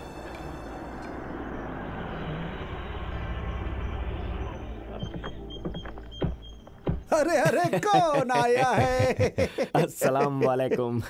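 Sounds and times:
car engine rumble: 0:00.0 - 0:07.2.

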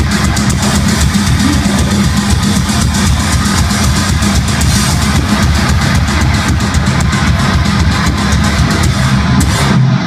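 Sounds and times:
bass guitar: 0:00.0 - 0:10.0
distorted electric guitars: 0:00.0 - 0:10.0
fast dense drumming: 0:00.0 - 0:10.0.

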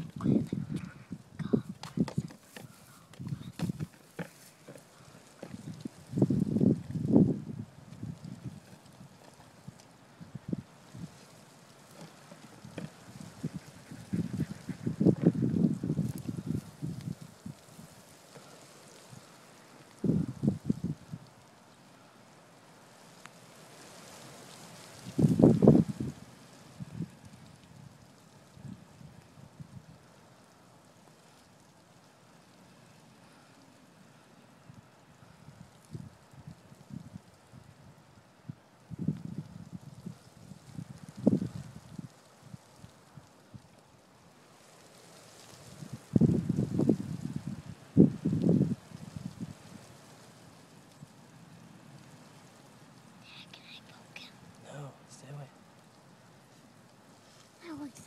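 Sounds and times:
wind buffeting microphone: 0:00.0 - 0:11.2, 0:12.0 - 0:18.0, 0:20.0 - 0:21.3, 0:24.9 - 0:30.1, 0:34.6 - 0:43.7, 0:45.6 - 0:50.1
faint steady hiss: 0:00.0 - 0:58.0.

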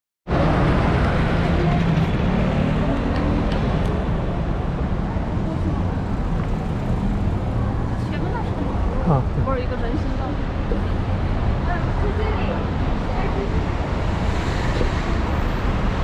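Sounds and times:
indistinct voices of passers-by: 0:00.3 - 0:16.0
traffic noise: 0:00.3 - 0:16.0.

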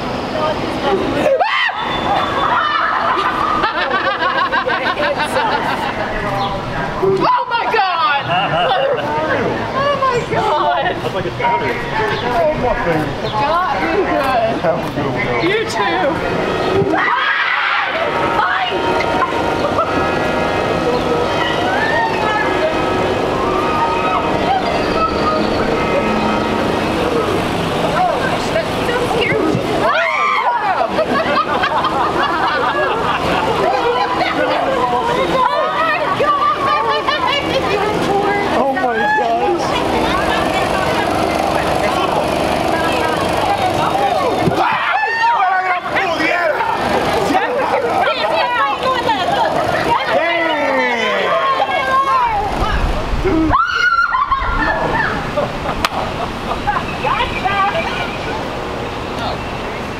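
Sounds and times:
people talking: 0:00.0 - 0:59.9
drone of held tones: 0:16.0 - 0:31.0.

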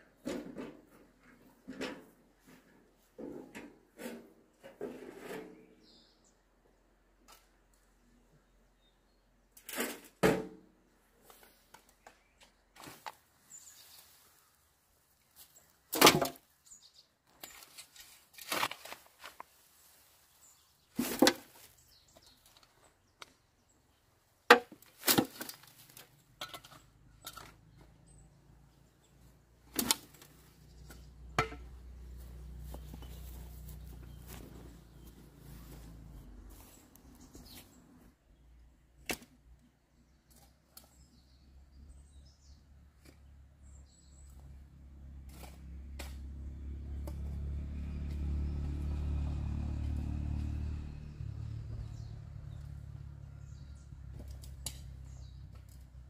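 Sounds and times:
shovel scraping metal wheelbarrow: 0:03.2 - 0:05.8, 0:09.6 - 0:10.4, 0:21.0 - 0:21.8
birds chirping: 0:26.7 - 0:38.6, 0:51.1 - 0:55.6.

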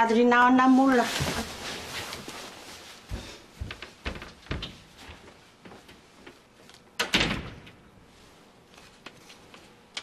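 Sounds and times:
cellophane and paper rustling: 0:00.6 - 0:03.1.

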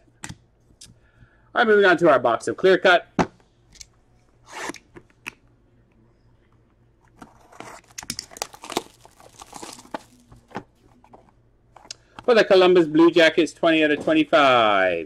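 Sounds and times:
plastic wrap crinkling: 0:07.2 - 0:11.2
plastic wrap ripping: 0:07.4 - 0:10.4.

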